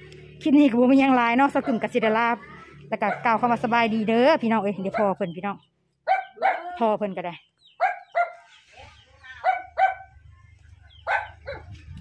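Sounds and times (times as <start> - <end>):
dog barking: 3.0 - 3.4, 4.9 - 5.2, 6.0 - 6.8, 7.8 - 8.5, 9.4 - 10.2, 11.0 - 11.8.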